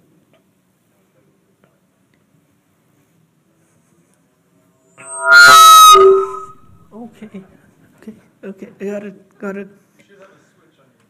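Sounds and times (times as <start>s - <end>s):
microphone feedback howl: 5.0s - 6.8s.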